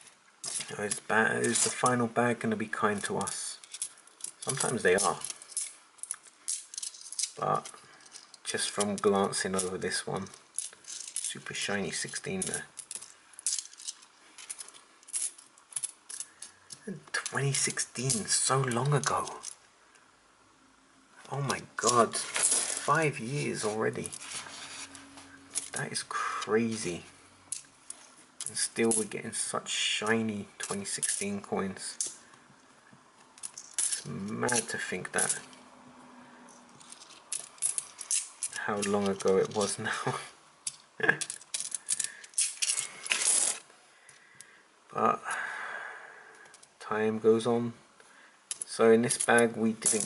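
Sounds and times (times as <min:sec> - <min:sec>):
coins clinking: 0:00.4 - 0:01.9, 0:03.0 - 0:19.6, 0:21.4 - 0:26.0, 0:26.6 - 0:29.1, 0:30.6 - 0:32.2, 0:33.4 - 0:35.5, 0:36.5 - 0:39.9, 0:40.6 - 0:43.6, 0:48.5 - 0:50.0.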